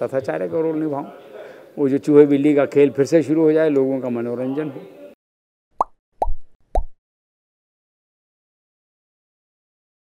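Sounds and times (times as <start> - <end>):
pop sound effects: 5.8 - 7.0.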